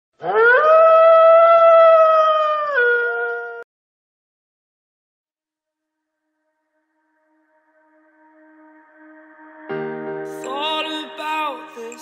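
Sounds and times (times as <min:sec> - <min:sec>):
long animal howl: 0:00.2 - 0:03.6.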